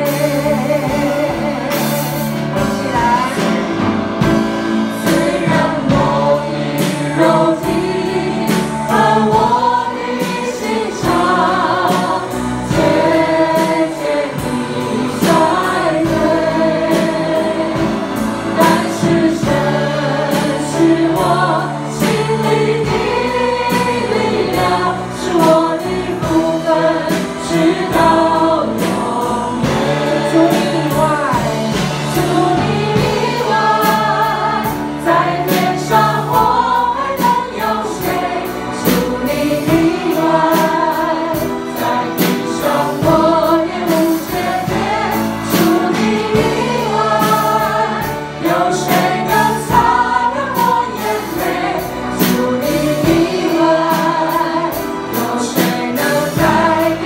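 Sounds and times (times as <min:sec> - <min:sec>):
band with steady beat: 0:00.0 - 0:57.0
group singing praise song: 0:00.0 - 0:57.0.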